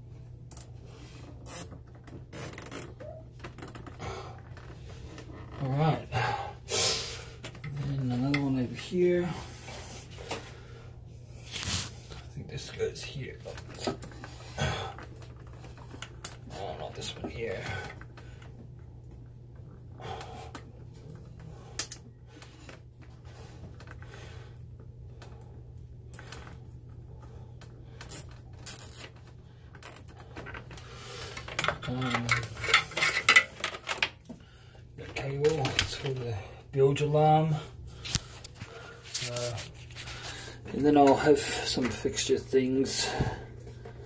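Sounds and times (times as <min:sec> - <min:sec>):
steady low hum: 0:00.0 - 0:44.0.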